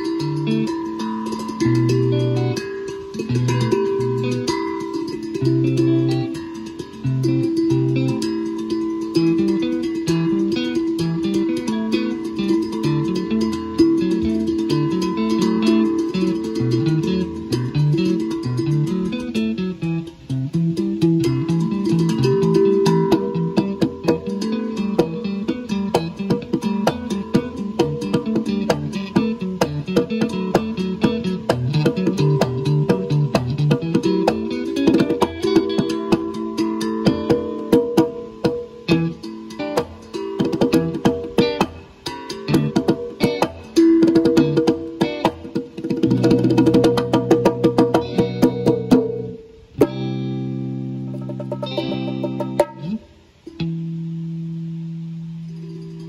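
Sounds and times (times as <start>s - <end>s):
guitar chords ringing: 0.0s - 56.0s
guitar picked melody: 0.0s - 56.0s.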